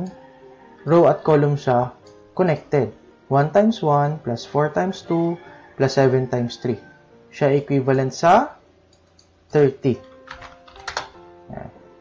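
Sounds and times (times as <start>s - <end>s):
soft background music: 0.0s - 12.0s
keyboard keys clicking: 8.9s - 11.2s.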